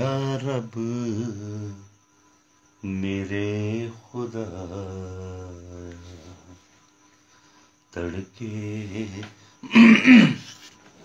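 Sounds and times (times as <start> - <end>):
man clearing throat: 9.6 - 10.5.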